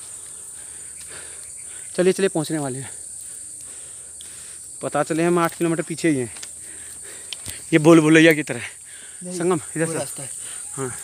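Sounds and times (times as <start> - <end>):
insects shrill drone: 0.0 - 11.0.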